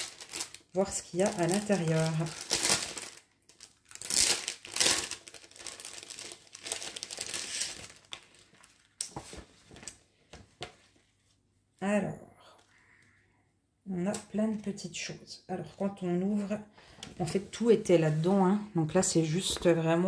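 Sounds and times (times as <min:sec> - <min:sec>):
plastic packaging tearing and crinkling: 0:00.0 - 0:09.9.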